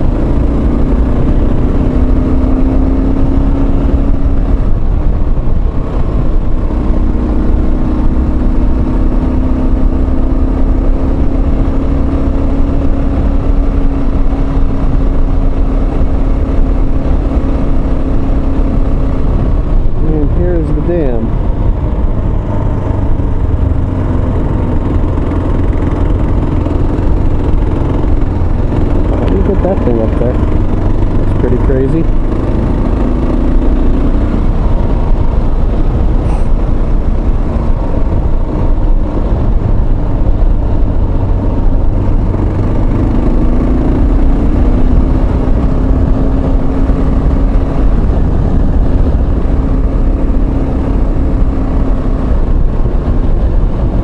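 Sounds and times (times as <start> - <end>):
motorcycle engine running: 0.0 - 54.0
wind and road rush: 0.0 - 54.0.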